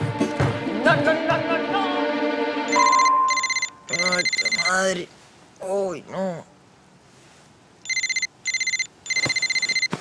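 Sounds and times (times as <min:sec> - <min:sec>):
mobile phone ringing trill: 0:02.7 - 0:04.8, 0:07.8 - 0:10.0.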